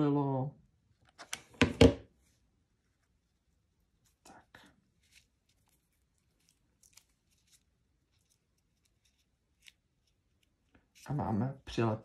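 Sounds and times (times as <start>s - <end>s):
glue gun knocking on table: 1.6s - 2.0s.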